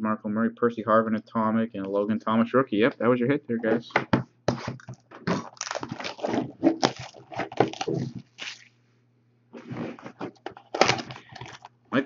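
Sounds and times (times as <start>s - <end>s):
foil wrapper crinkling and tearing: 4.8s - 8.7s, 10.6s - 11.7s.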